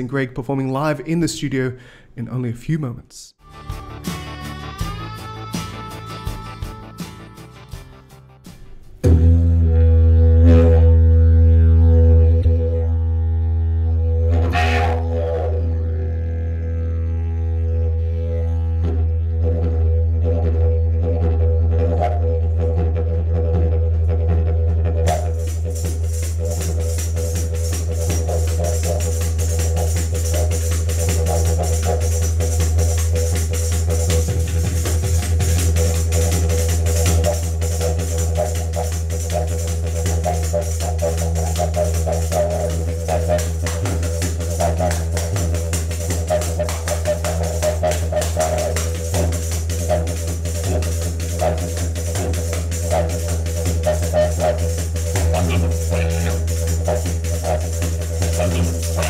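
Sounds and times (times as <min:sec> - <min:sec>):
didgeridoo drone: 0:09.0 - 0:59.0
tambourine jingling: 0:25.2 - 0:59.0.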